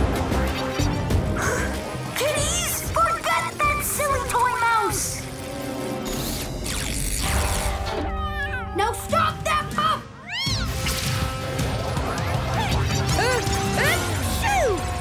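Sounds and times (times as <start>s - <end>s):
cartoon background music: 0.0s - 15.0s.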